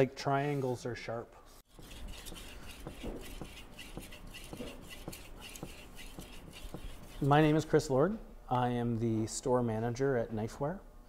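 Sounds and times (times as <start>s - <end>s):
knife scraping on whetstone: 1.6s - 7.7s.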